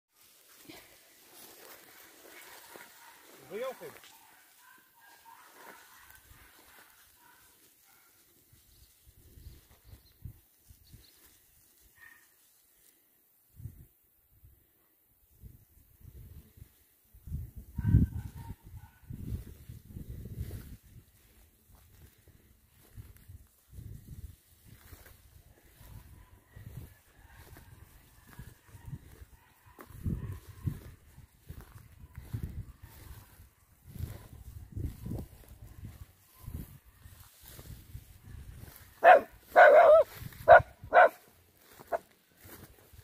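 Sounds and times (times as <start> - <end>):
wind gusts on microphone: 15.3 - 41.2.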